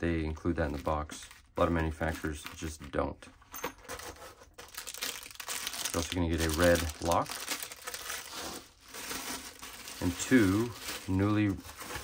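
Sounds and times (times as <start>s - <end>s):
plastic bag crinkling: 3.9s - 12.0s.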